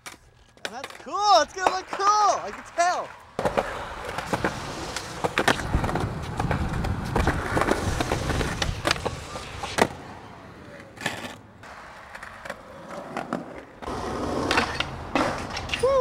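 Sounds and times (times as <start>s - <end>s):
skateboard clicks and knocks: 0.0s - 16.0s
skateboard wheels rolling on concrete: 0.0s - 16.0s.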